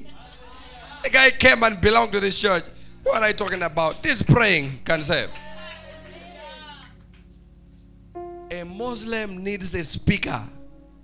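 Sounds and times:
soft background music tones: 0.0 - 11.0.

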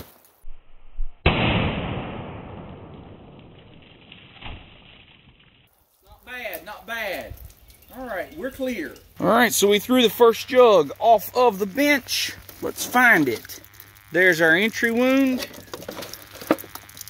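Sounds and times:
muffled gunshot: 1.2 - 3.6.

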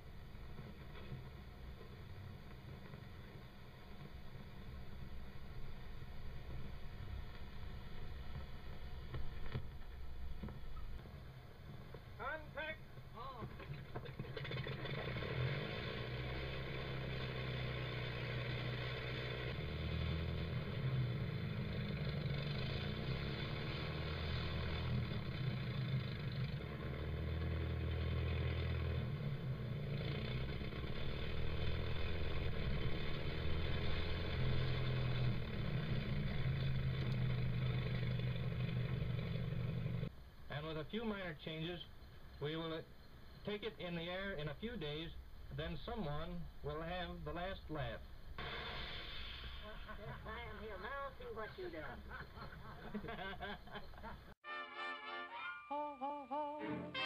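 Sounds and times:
aircraft engine running: 0.0 - 40.1.

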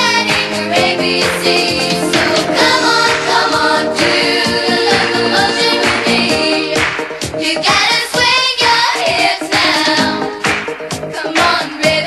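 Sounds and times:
upbeat pop song with singing: 0.0 - 12.0.

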